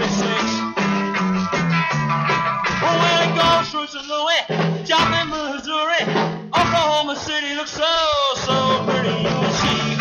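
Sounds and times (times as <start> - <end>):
man singing lead vocal: 0.0 - 0.9, 2.7 - 10.0
rhythm and blues band: 0.0 - 10.0.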